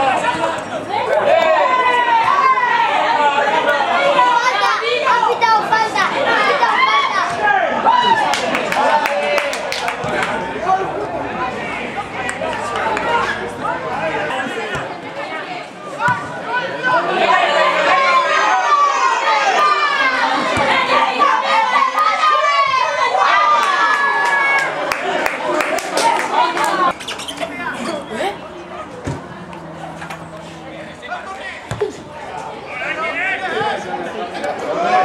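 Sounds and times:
voices calling out: 0.0s - 35.0s
people shouting: 26.0s - 33.8s
football being kicked: 31.7s - 31.9s.

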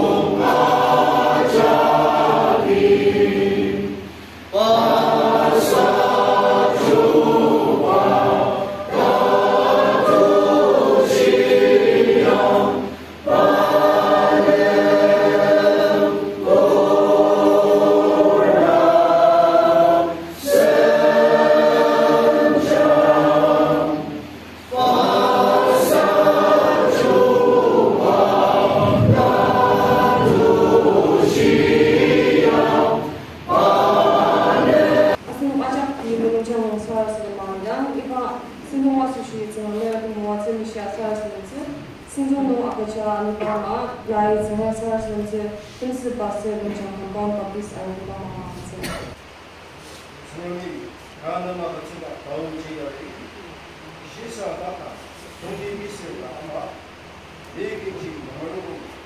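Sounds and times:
congregation singing a hymn: 0.0s - 37.2s.

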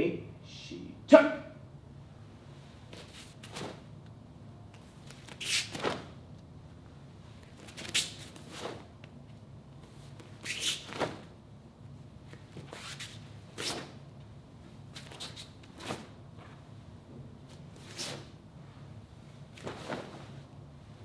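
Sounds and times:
faint room hum: 0.0s - 21.0s
uniform snapping and swishing: 2.8s - 6.2s, 7.4s - 9.2s, 9.8s - 11.4s, 12.2s - 14.0s, 14.9s - 16.6s, 17.5s - 18.4s, 19.5s - 20.5s.

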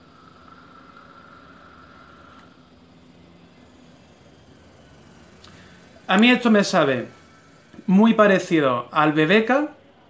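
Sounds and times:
air whistling through vape: 0.0s - 9.5s.

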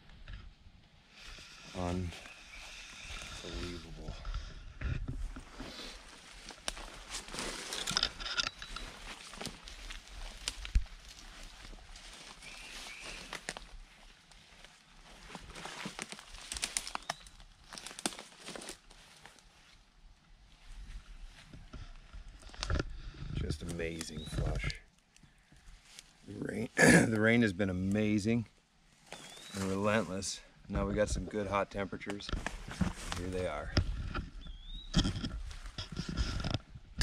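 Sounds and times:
leaves crackling: 1.1s - 4.2s, 5.3s - 19.9s, 23.5s - 33.8s
footsteps through undergrowth: 1.2s - 22.6s, 23.6s - 26.3s, 28.9s - 36.8s.

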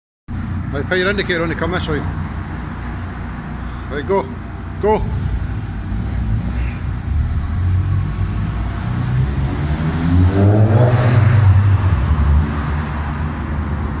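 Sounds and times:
car engine accelerating hard: 5.1s - 14.0s.

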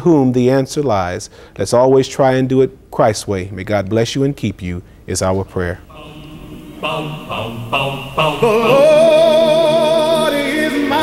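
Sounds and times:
voices singing theme music: 5.9s - 11.0s.

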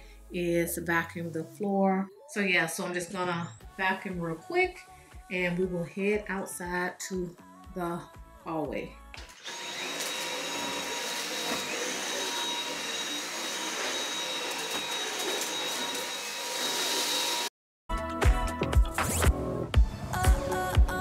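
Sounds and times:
vacuum cleaner running: 9.2s - 17.5s
music with strong beat: 17.9s - 21.0s.

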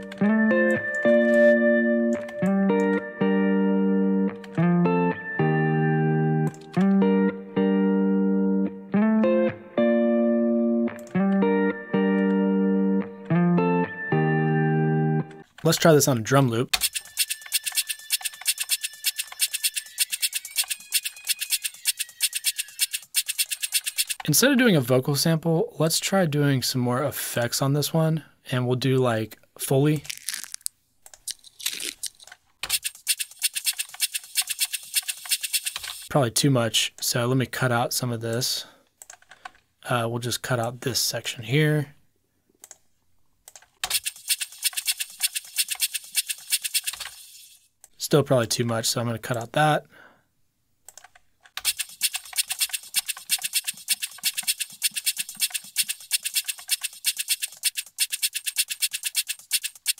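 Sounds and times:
scratchy percussion ticks: 16.9s - 24.3s, 51.7s - 59.9s.

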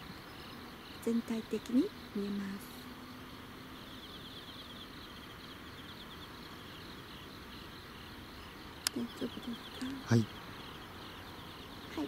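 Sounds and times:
night insects chirping: 0.0s - 12.0s.

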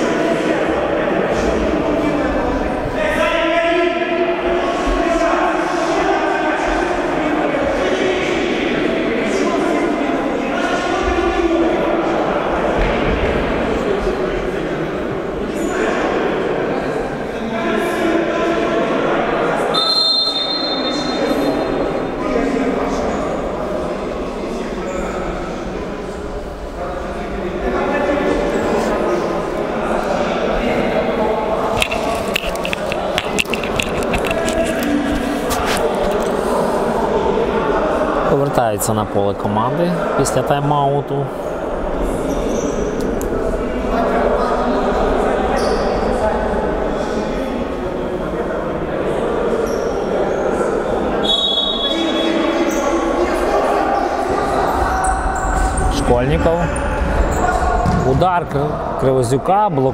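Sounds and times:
indistinct voices echoing: 0.0s - 59.9s
high whistle tone: 19.7s - 21.7s, 51.2s - 52.4s.

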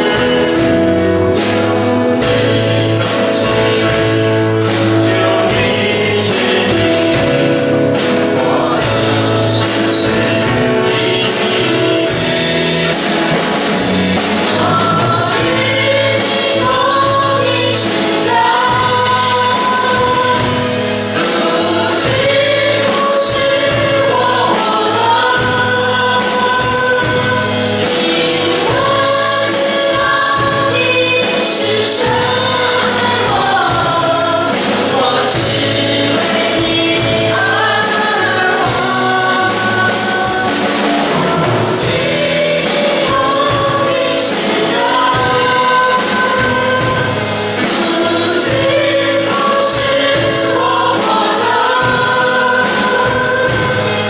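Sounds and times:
amplified accompaniment with beat: 0.0s - 54.0s
group singing in unison: 0.0s - 54.0s.

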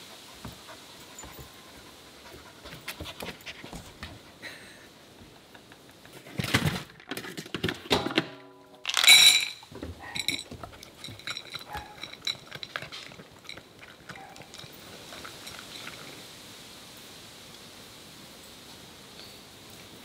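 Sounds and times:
faint steady hiss: 0.0s - 6.9s, 8.0s - 20.0s
dry kibble rattling in ceramic bowl: 8.9s - 16.2s.

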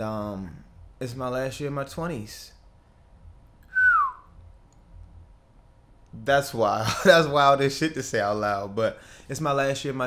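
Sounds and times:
man whistling falling note: 3.7s - 4.4s.

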